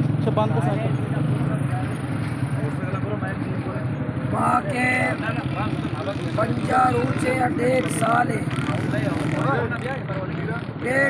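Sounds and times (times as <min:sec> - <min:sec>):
men talking indistinctly: 0:00.2 - 0:11.0.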